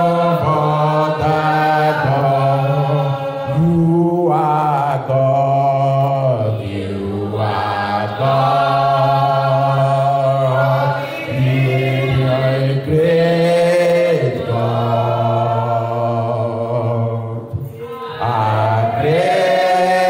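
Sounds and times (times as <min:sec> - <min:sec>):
voices singing worship song: 0:00.0 - 0:20.0.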